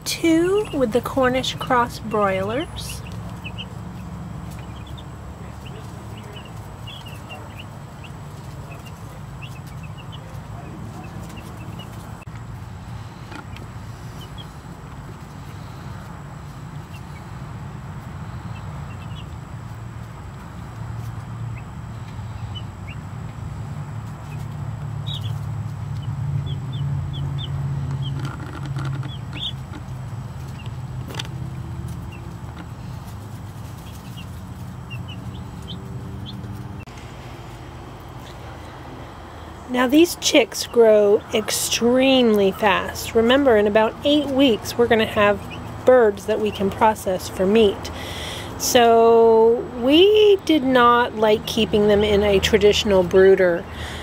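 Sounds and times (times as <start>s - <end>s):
steady low rumble: 0.0s - 54.0s
chicks peeping: 0.5s - 51.1s.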